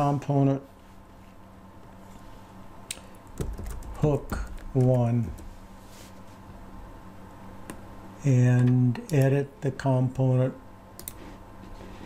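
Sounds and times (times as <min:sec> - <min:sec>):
computer keyboard typing: 0:03.3 - 0:05.5, 0:11.0 - 0:11.2.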